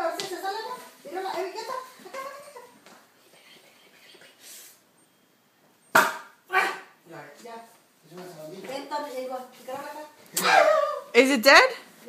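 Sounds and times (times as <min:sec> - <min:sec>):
sharp loud whack: 0:05.9 - 0:06.4.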